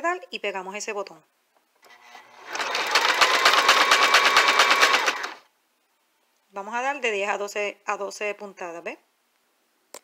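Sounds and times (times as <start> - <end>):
sewing machine motor whine: 1.9 - 5.4.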